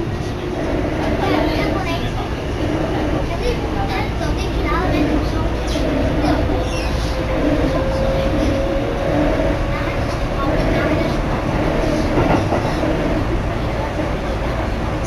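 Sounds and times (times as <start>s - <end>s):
train wheels rumbling on rail: 0.0s - 15.0s
train motor whine: 0.3s - 13.5s.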